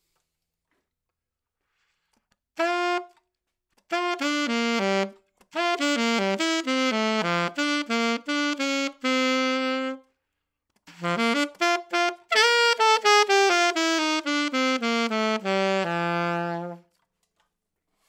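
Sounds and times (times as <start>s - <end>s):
alto saxophone playing: 2.6s - 3.3s, 3.9s - 10.1s, 10.9s - 16.9s.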